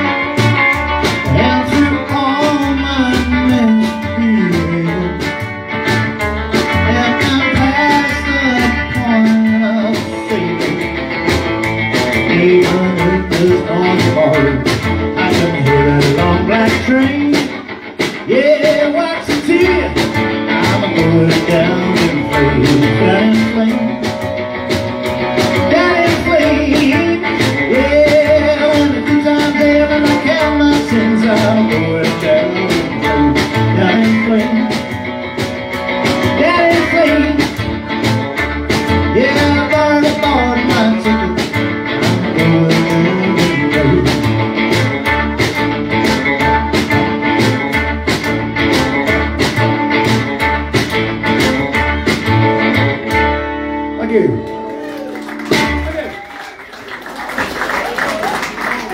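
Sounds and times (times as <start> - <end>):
rock and roll band playing: 0.0 - 58.9.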